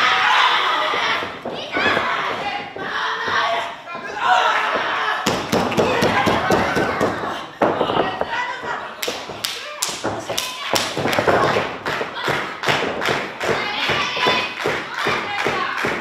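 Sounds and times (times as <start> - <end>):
voices shouting: 0.0 - 8.9
rhythmic hand-clapping: 8.9 - 16.0.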